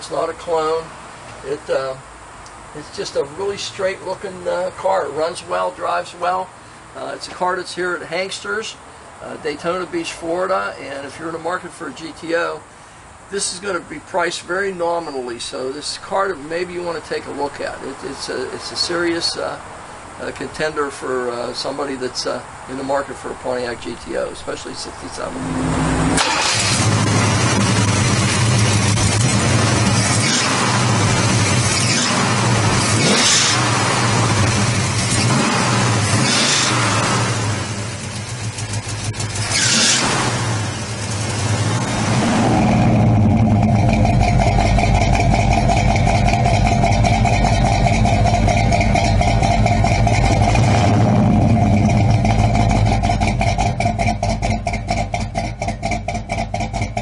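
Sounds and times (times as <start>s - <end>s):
car engine revving and idling: 24.2s - 57.0s.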